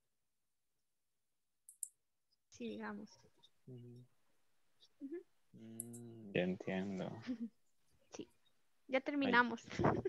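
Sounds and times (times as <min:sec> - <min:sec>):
man speaking: 0:03.7 - 0:04.1, 0:05.6 - 0:07.4.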